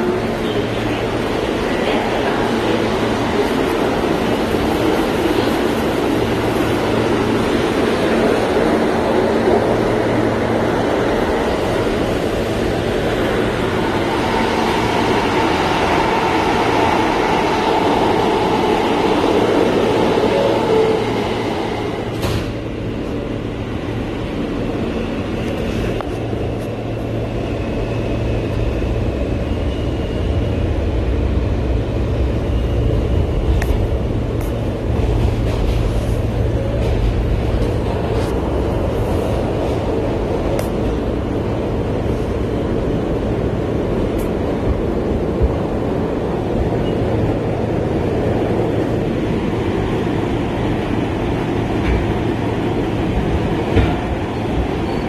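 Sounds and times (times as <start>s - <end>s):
subway train rumbling on rails: 0.0s - 55.0s.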